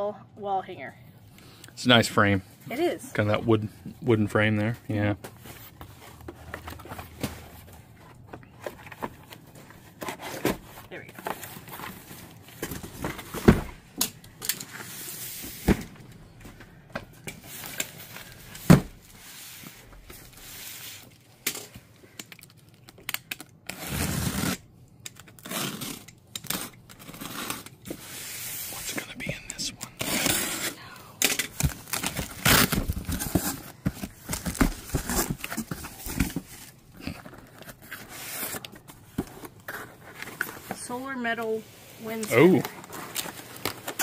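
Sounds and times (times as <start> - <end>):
box cutter slicing packing tape: 23.7 - 24.6, 25.4 - 27.7, 30.0 - 30.8, 31.9 - 33.6
cardboard flaps tearing and rustling: 23.7 - 24.6, 31.5 - 38.6.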